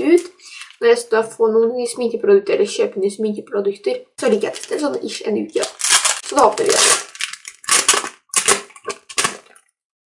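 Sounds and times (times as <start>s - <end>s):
gift wrapping crinkling: 0.0s - 0.8s, 4.2s - 9.6s.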